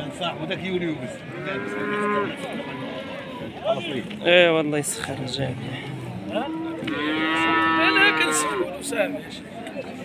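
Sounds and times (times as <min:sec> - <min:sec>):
cow mooing: 0:01.3 - 0:02.6, 0:06.3 - 0:08.7.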